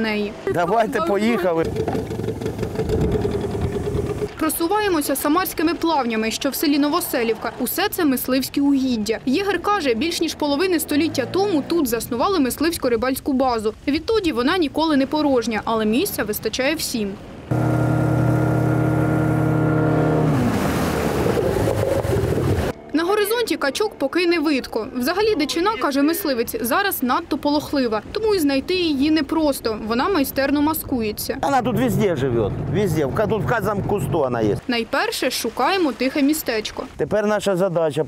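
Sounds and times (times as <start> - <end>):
outboard motor running: 0.9 - 4.3, 17.5 - 22.7, 31.5 - 34.3
water rushing past hull: 1.0 - 10.0, 16.0 - 22.8, 31.5 - 37.0.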